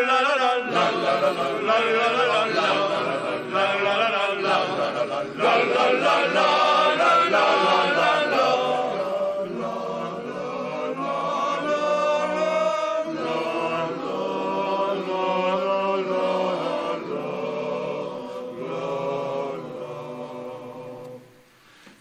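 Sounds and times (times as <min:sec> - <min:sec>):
male vocal group singing a cappella: 0:00.0 - 0:21.4.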